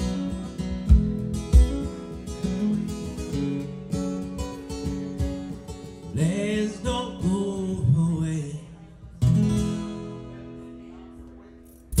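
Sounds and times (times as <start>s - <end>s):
acoustic guitar strum: 0.0s - 8.6s, 9.2s - 10.9s, 11.6s - 12.0s.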